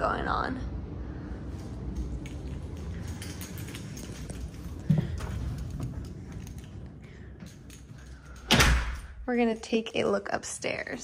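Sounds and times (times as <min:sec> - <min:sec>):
steady low rumble: 0:00.0 - 0:11.0
door opening and shutting: 0:08.2 - 0:09.2.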